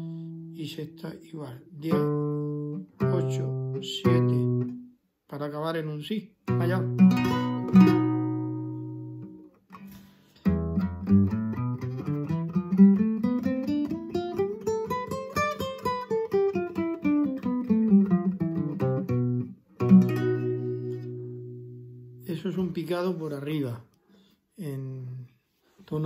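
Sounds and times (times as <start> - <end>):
classical guitar scale: 0.0 - 5.0, 6.4 - 22.9.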